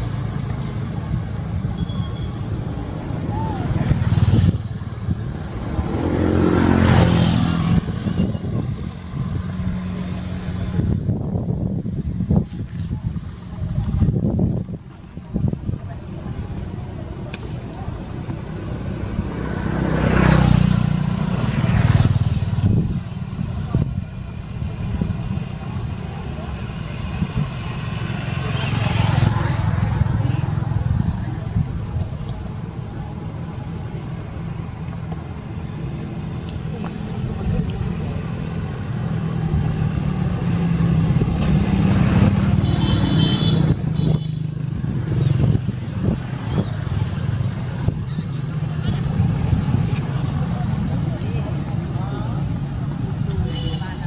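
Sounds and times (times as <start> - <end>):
faint voices: 0.0 - 54.0
passing motor vehicles rumble: 0.0 - 54.0.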